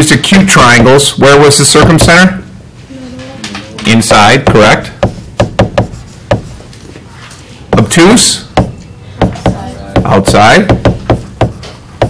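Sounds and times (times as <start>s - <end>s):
stylus tapping on tablet screen: 4.2s - 6.5s.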